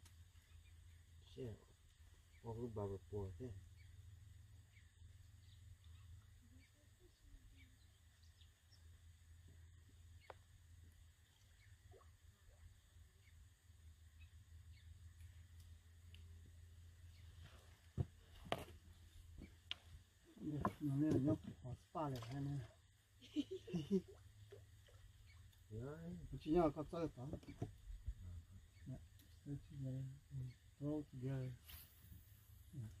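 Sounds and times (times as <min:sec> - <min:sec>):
faint low outdoor rumble: 0:00.0 - 0:33.0.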